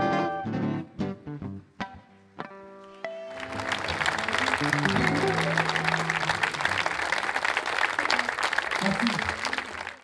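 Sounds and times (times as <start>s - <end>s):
audience applauding: 3.3s - 10.0s
voices in crowd: 3.6s - 10.0s.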